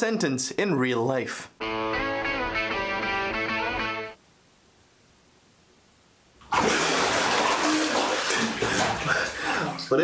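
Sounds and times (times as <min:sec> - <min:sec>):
bathwater splashing: 0:06.4 - 0:10.0
water streaming off person: 0:06.4 - 0:10.0.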